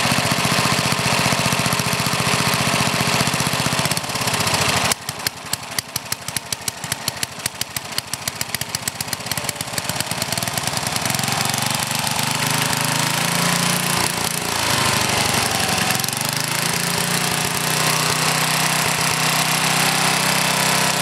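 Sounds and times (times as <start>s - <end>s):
small engine running: 0.0s - 21.0s.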